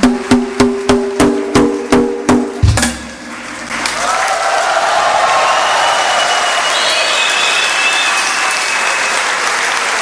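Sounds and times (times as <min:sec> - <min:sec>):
drum solo on pitched drums: 0:00.0 - 0:03.3.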